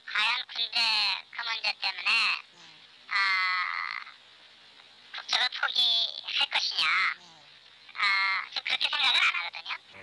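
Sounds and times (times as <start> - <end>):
person speaking: 1.4 - 3.6, 6.3 - 8.3.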